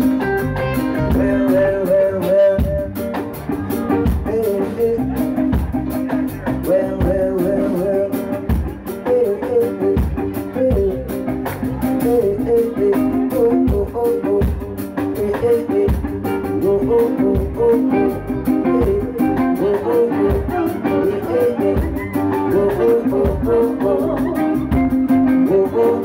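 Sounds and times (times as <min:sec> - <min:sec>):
electric guitar: 0:00.0 - 0:26.0
live reggae band playing: 0:00.0 - 0:26.0.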